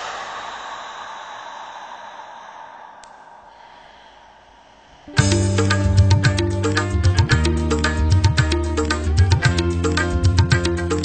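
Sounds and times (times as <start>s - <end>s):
hiss of noise: 0.0s - 5.8s.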